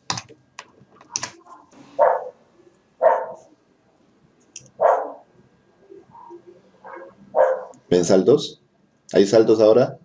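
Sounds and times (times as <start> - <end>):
dog barking: 2.0 - 2.4, 3.0 - 3.5, 4.8 - 5.3, 6.2 - 7.8.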